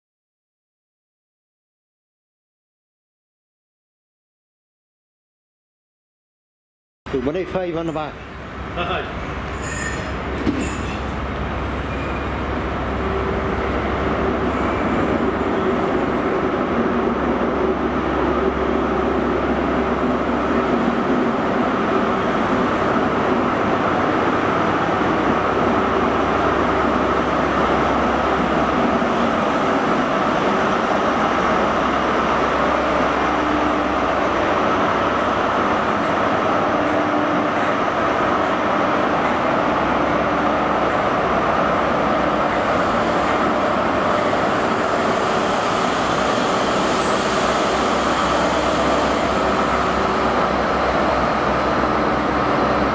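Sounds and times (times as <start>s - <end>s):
diesel train engine running: 7.1s - 52.9s
train coaches rolling by: 7.1s - 52.9s.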